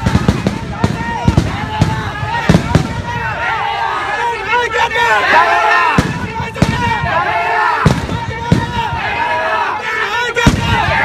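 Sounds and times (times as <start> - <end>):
firecrackers banging: 0.0 - 3.4, 5.9 - 9.3, 10.4 - 11.0
crowd shouting and cheering: 0.0 - 11.0.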